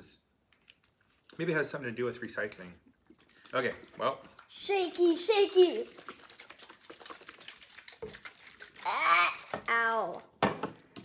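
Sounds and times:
can and bottle being shaken: 0:03.2 - 0:09.9
person crying out: 0:08.8 - 0:09.5.

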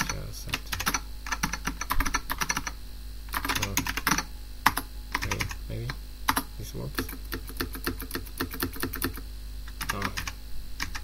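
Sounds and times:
keyboard typing: 0:00.0 - 0:11.0.

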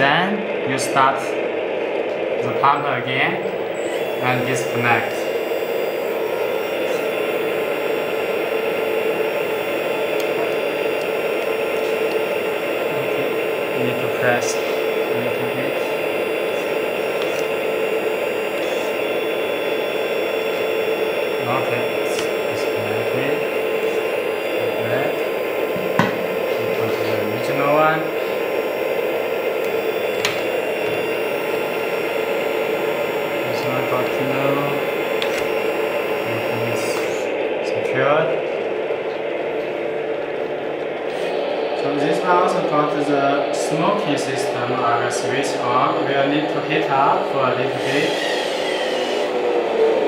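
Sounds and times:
hydraulic pump humming: 0:00.0 - 0:50.0.

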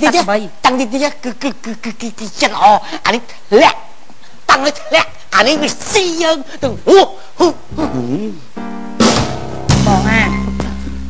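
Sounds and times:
man calling out: 0:00.0 - 0:08.5, 0:09.8 - 0:10.4.

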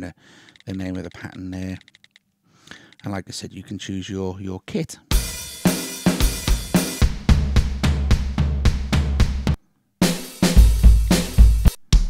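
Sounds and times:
rock drum machine beat: 0:05.1 - 0:12.0.

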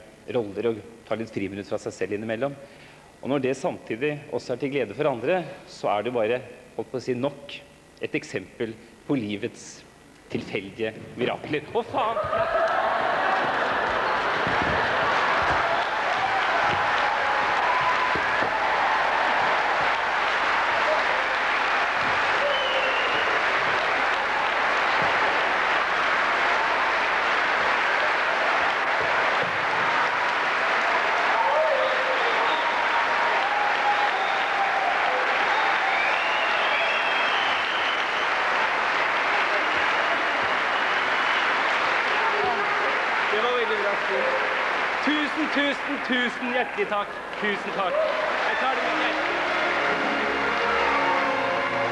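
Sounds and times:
audience applauding: 0:11.8 - 0:51.9.

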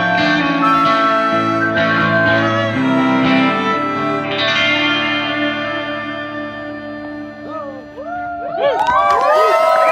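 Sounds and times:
electric guitar chord ringing: 0:00.0 - 0:08.0
fiddle: 0:00.0 - 0:08.4
harmonica: 0:00.0 - 0:08.4.

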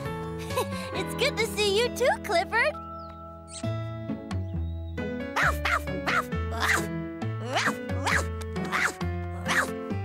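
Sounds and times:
cartoon soundtrack music: 0:00.2 - 0:10.0.

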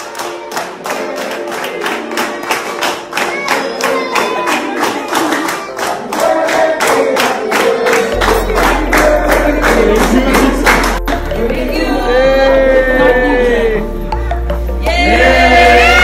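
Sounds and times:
rhythmic hand clapping: 0:00.0 - 0:11.7
people singing: 0:00.0 - 0:14.0, 0:14.8 - 0:16.0.

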